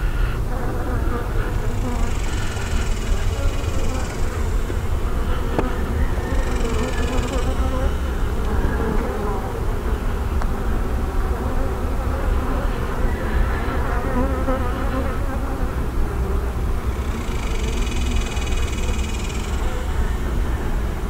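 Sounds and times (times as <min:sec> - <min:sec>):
honey bees humming: 0:00.0 - 0:21.0.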